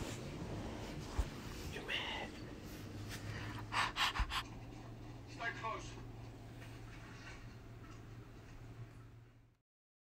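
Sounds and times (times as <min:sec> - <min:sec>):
faint steady low hum: 0:00.0 - 0:09.6
person whispering: 0:01.7 - 0:02.4.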